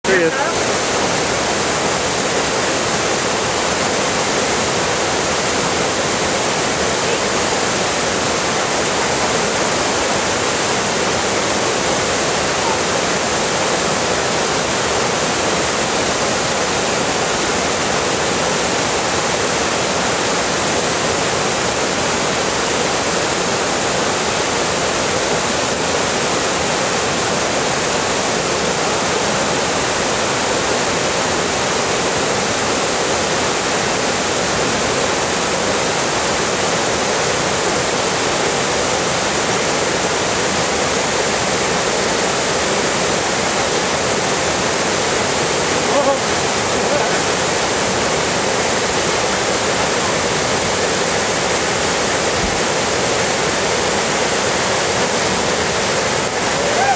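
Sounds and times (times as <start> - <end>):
whitewater rapids rushing over rocks: 0.0 - 56.9.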